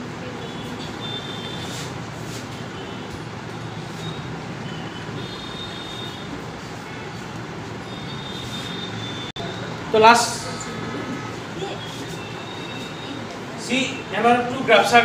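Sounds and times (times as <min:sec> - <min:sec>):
steady background noise: 0:00.0 - 0:15.0
whiteboard being wiped: 0:01.5 - 0:02.7, 0:08.3 - 0:09.0.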